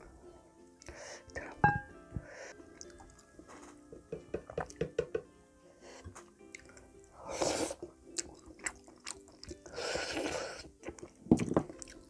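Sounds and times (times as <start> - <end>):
quiet background music: 0.0 - 12.0
close eating sounds: 2.2 - 3.3, 6.0 - 12.0.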